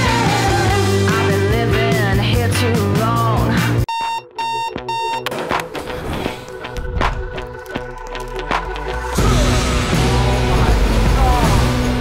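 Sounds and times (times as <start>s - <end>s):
rock music: 0.0s - 12.0s
electronic alarm beeps: 3.9s - 5.3s.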